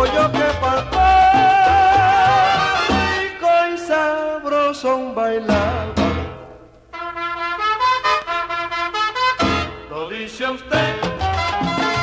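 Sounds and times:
salsa horn section with trumpets: 0.0s - 3.7s, 5.5s - 12.0s.

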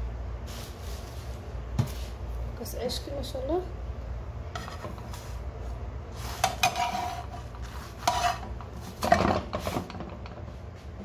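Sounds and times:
steady low hum: 0.0s - 11.0s
metal spatula scraping frying pan: 6.2s - 10.0s.

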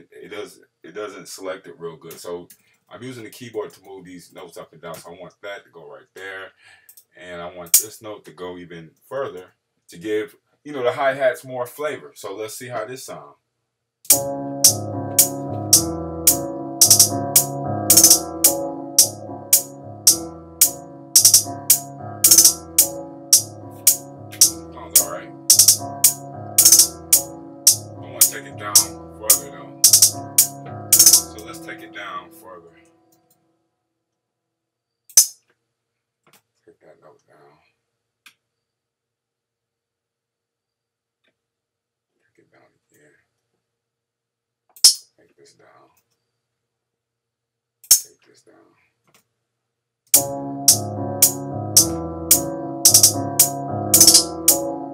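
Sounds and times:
trap hi-hat pattern: 14.1s - 31.6s, 50.2s - 54.6s.

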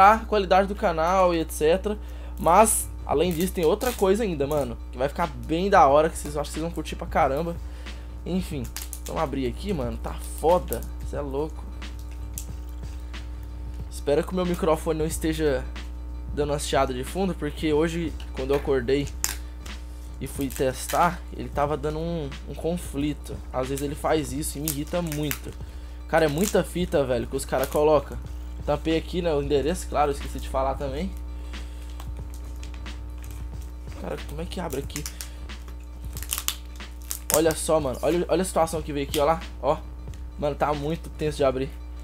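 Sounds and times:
background music: 0.0s - 42.0s
low electrical hum: 0.0s - 42.0s
plastic tape rustling: 3.1s - 7.6s, 8.3s - 13.0s, 18.0s - 25.6s, 26.2s - 28.2s, 29.7s - 39.4s
scissors snipping tape: 8.6s - 9.3s, 18.5s - 19.8s, 24.6s - 25.6s, 34.6s - 37.6s.

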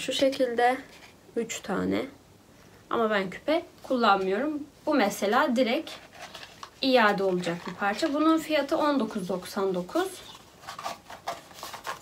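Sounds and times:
cardboard box scraping and tapping: 10.6s - 12.0s.

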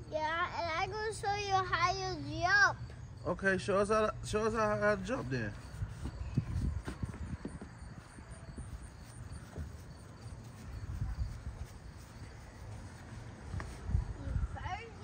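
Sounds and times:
child's footsteps on wooden steps: 5.6s - 13.9s.

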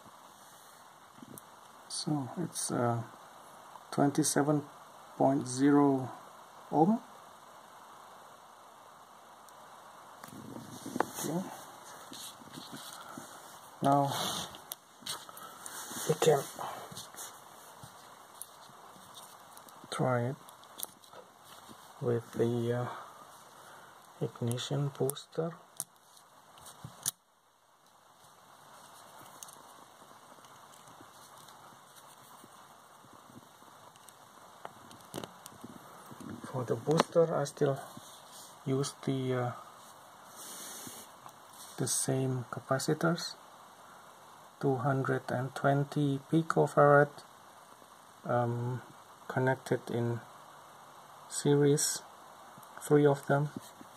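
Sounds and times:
faint steady hiss: 0.0s - 53.9s.

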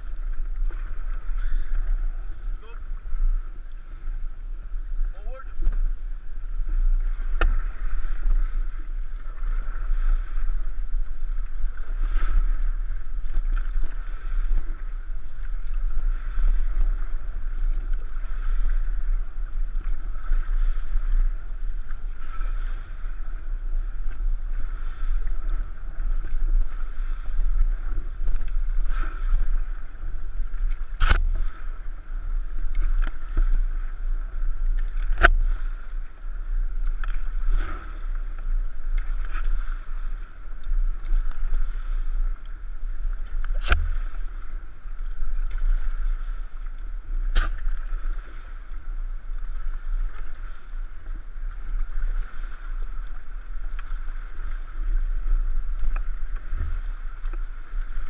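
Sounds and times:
paddles splashing in water: 0.0s - 58.0s
wind rumble on microphone: 0.0s - 58.0s.

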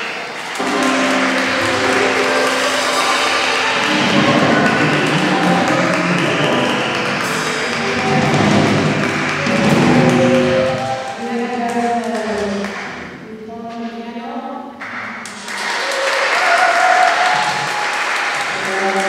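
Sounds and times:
percussion: 0.5s - 13.3s
flute: 0.6s - 11.3s
live folk band playing: 0.6s - 11.3s.

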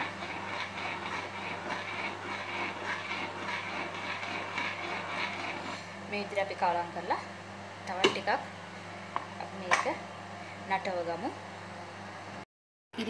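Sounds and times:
faint scrapes and ticks: 0.0s - 5.9s
spoon stirring porridge in a pot: 0.0s - 6.0s
steady low hum: 0.0s - 12.4s.

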